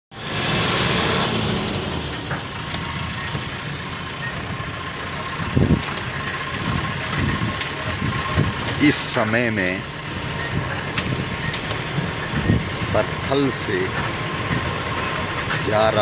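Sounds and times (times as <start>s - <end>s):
road and wind noise: 0.1s - 16.0s
vehicle engine running: 0.1s - 16.0s
low bumps: 5.3s - 16.0s.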